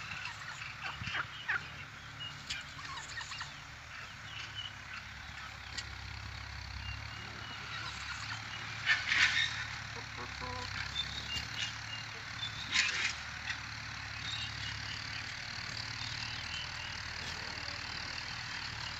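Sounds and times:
turkeys calling: 0:00.0 - 0:18.9
turkey clicks: 0:00.1 - 0:06.0, 0:06.8 - 0:18.9.

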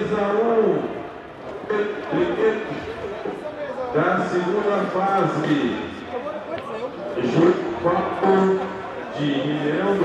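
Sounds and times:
man announcing over public address: 0:00.0 - 0:10.0.

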